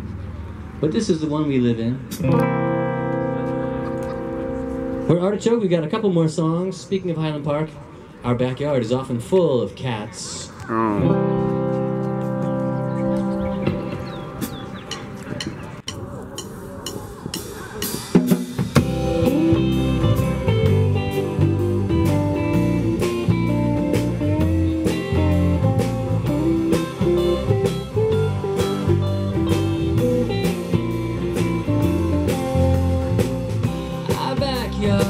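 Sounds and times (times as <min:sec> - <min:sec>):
bass: 0:00.0 - 0:35.0
electric guitar: 0:02.1 - 0:05.1, 0:10.6 - 0:15.8, 0:18.2 - 0:35.0
drum kit beat: 0:11.0 - 0:35.0.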